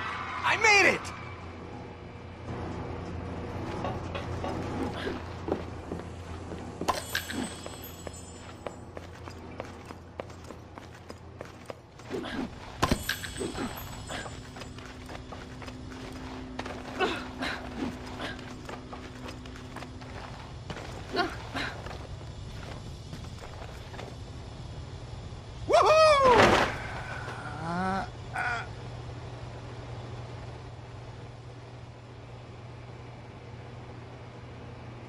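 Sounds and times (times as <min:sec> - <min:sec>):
steady low hum: 0:01.1 - 0:35.0.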